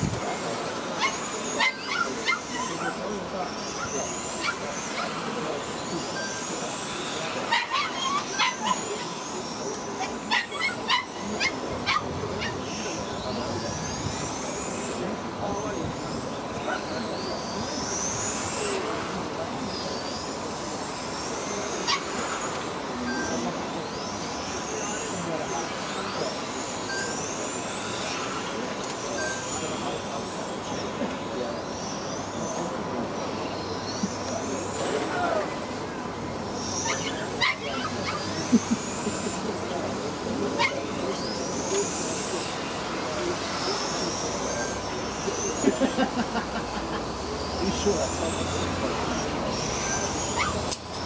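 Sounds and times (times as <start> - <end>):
electric motor whines: 0.0 - 51.0.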